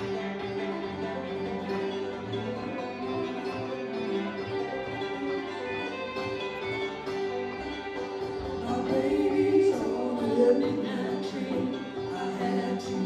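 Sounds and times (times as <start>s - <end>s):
banjo picking: 0.0s - 13.0s
fiddle melody: 0.0s - 13.0s.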